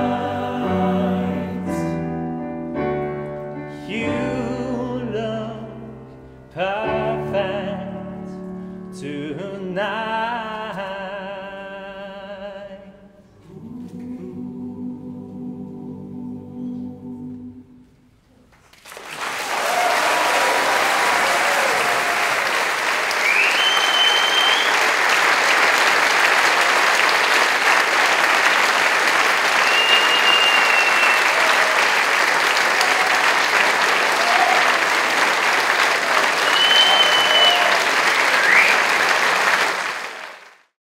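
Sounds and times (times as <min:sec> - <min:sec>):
audience applauding: 0:18.7 - 0:40.7
people cheering: 0:18.9 - 0:40.5
high whistles: 0:23.1 - 0:25.0, 0:29.5 - 0:31.6, 0:36.3 - 0:39.0.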